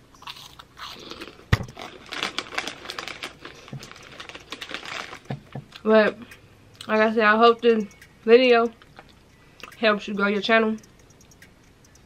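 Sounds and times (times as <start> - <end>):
crunching snack being chewed: 0.2 - 5.8.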